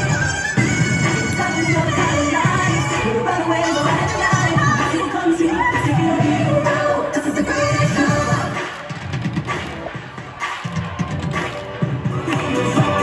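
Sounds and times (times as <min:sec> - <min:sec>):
upbeat pop dance music with singing: 0:00.0 - 0:13.0.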